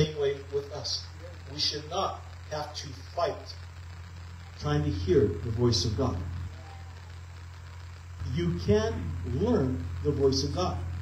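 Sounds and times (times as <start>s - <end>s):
man's amplified voice: 0.0s - 3.6s, 4.6s - 6.5s, 8.2s - 11.0s
steady low hum: 0.0s - 11.0s.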